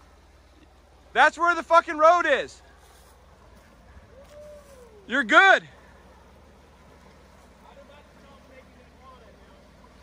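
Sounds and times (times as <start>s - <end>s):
car engine running at low revs: 0.0s - 10.0s.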